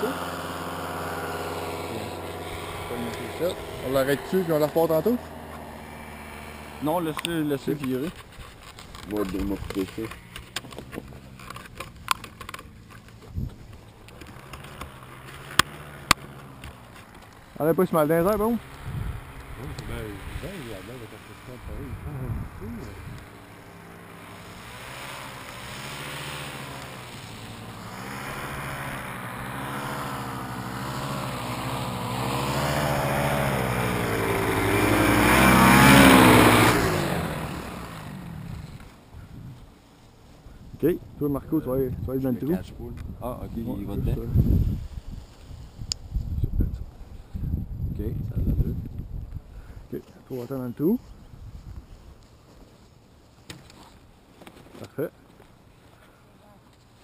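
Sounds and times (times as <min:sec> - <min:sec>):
paramotor engine and propeller: 0:00.0 - 0:57.0
low wind rumble on microphone: 0:05.8 - 0:14.1, 0:17.8 - 0:23.5, 0:31.8 - 0:49.9, 0:50.6 - 0:52.2.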